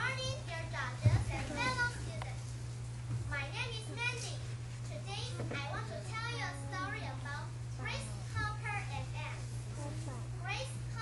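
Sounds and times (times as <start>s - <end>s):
child speaking: 0.0s - 2.4s, 3.3s - 11.0s
steady low hum: 0.0s - 11.0s.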